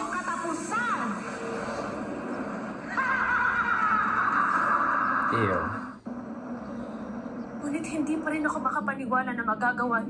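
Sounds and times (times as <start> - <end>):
monster screeching: 2.9 - 5.9.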